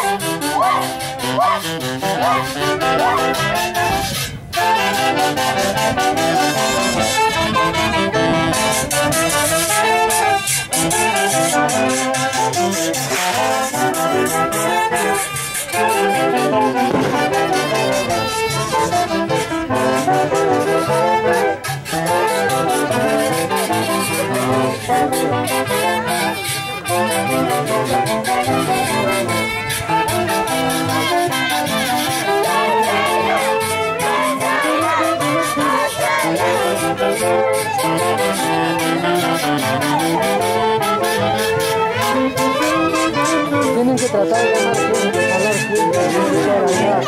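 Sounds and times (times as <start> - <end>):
wind band playing: 0.0 - 47.0
drum strokes: 16.7 - 19.8.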